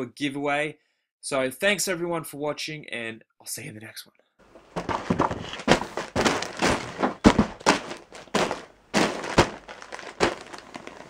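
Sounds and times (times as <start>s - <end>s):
packages bumping on desk: 4.5s - 11.0s
plastic mailing bag crinkling: 4.5s - 11.0s.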